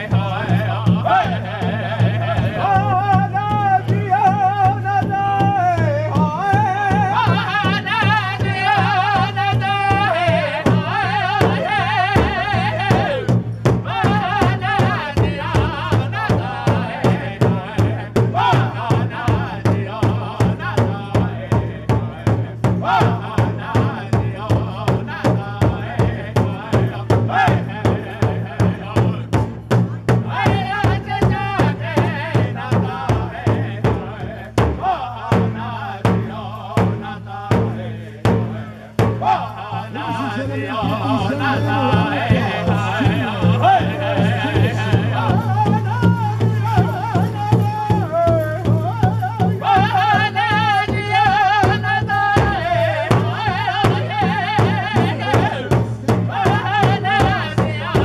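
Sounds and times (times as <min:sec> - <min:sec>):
large hand drum beating: 0:00.0 - 0:58.0
men singing in high voices: 0:00.0 - 0:58.0.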